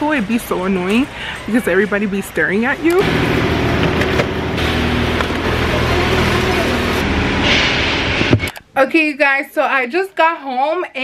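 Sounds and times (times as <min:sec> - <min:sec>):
car engine idling: 0:02.8 - 0:07.4.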